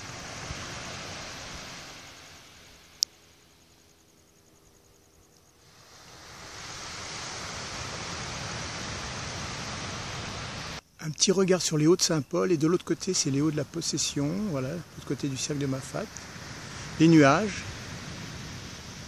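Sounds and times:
wind on microphone: 5.6 - 10.8, 12.2 - 19.0.

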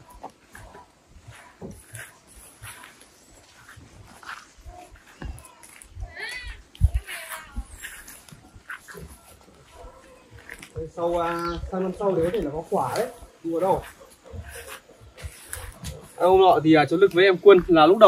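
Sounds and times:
footsteps on dirt path: 0.0 - 18.0.

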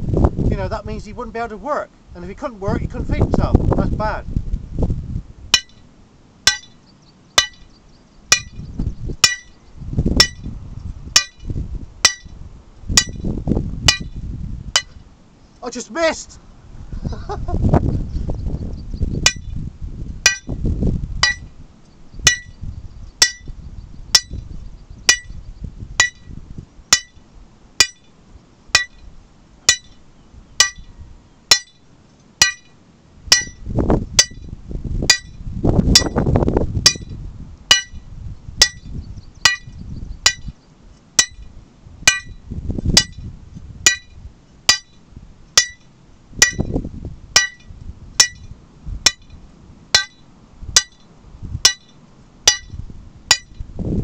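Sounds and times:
hammer striking steel rod: 5.6 - 5.8, 6.5 - 6.8, 7.4 - 7.7, 8.3 - 8.6, 9.2 - 9.6, 10.2 - 10.5, 11.2 - 12.3, 13.9 - 14.2, 20.3 - 20.5, 21.2 - 21.5, 22.3 - 22.6, 23.2 - 23.5, 25.1 - 25.4, 26.0 - 26.3, 26.9 - 27.2, 27.8 - 28.1, 28.8 - 29.1, 29.7 - 30.0, 30.6 - 30.9, 31.5 - 31.8, 32.4 - 33.6, 36.0 - 36.2, 36.9 - 38.0, 38.6 - 38.9, 39.5 - 40.5, 41.2 - 41.5, 42.1 - 42.4, 43.0 - 43.2, 43.9 - 45.0, 45.6 - 46.7, 47.4 - 48.5, 49.1 - 50.2, 50.8 - 53.6.

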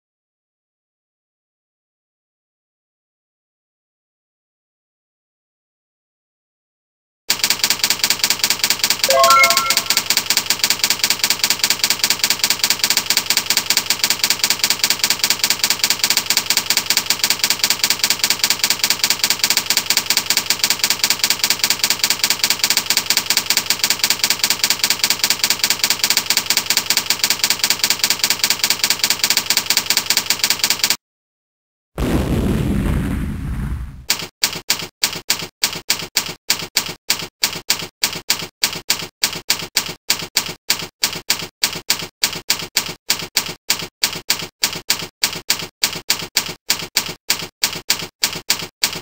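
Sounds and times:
typewriter bell ding: 9.1 - 10.2
typewriter key clicks: 34.1 - 49.0.

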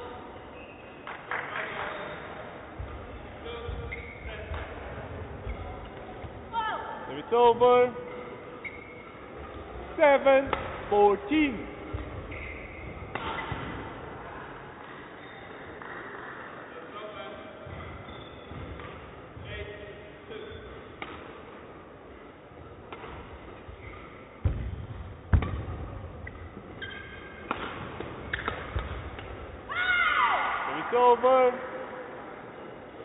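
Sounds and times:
racket hitting shuttlecock: 13.0 - 13.8, 21.0 - 21.4, 22.8 - 23.8, 24.4 - 29.6.

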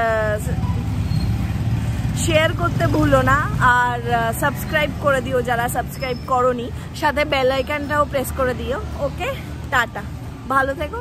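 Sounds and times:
woman speaking: 0.0 - 0.6, 2.2 - 11.0.

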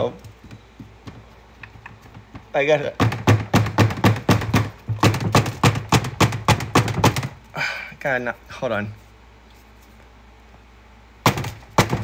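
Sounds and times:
rapid hard knocks on plastic: 0.2 - 7.4, 11.2 - 12.0.

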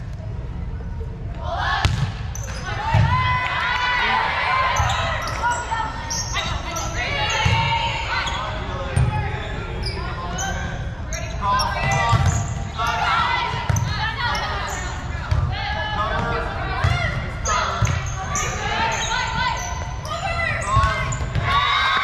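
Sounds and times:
spectators' voices: 0.3 - 22.0
sneakers squeaking on court: 4.7 - 15.4, 16.8 - 22.0.

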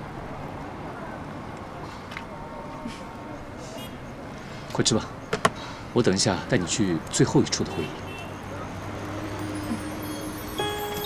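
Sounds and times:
distant traffic hum: 0.0 - 11.0.

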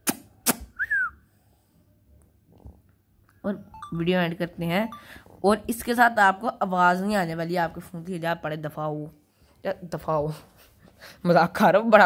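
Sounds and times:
falling whistle-like chirp: 0.8 - 1.2.

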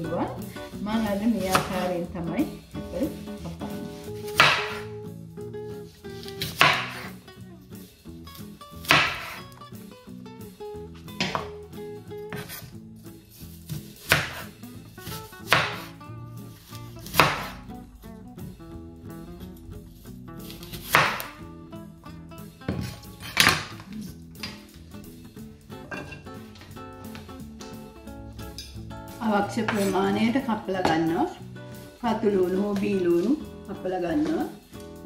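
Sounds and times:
soft background music: 0.0 - 35.0
knife slicing apple on board: 3.4 - 5.0, 6.2 - 7.2, 8.8 - 9.5, 11.2 - 11.5, 12.3 - 12.7, 13.7 - 16.0, 17.0 - 17.7, 20.4 - 21.4, 22.7 - 24.6
knife knocks and scrapes on board: 11.2 - 11.5, 12.3 - 12.7.

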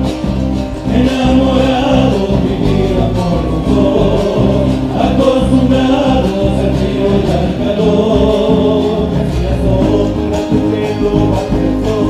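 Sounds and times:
male vocal group singing in harmony: 0.0 - 12.0
strummed acoustic guitars: 0.0 - 12.0.

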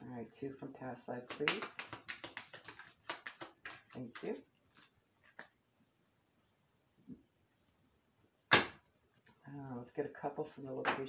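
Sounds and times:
cards being shuffled: 1.3 - 5.6.

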